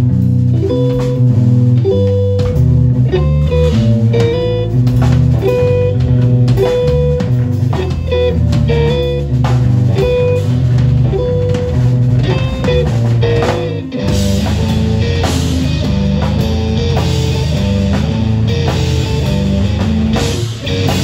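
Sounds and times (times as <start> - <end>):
bass guitar: 0.0 - 21.0
drum kit hits: 0.0 - 21.0
electric guitar: 0.0 - 21.0.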